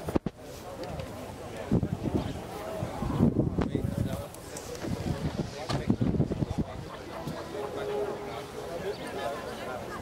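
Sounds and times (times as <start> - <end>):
people's voices: 0.0 - 10.0
wind buffeting microphone: 1.6 - 7.4.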